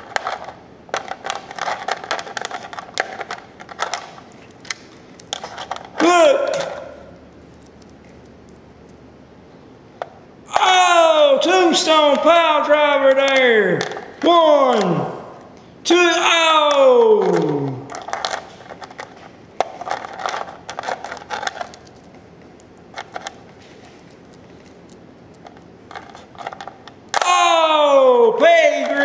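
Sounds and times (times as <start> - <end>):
plastic toy figures clacking: 0.0 - 6.8, 16.7 - 22.0.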